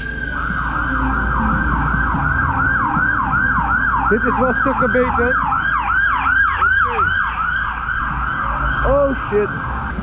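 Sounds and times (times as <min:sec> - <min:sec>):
emergency siren yelping: 0:00.0 - 0:09.9.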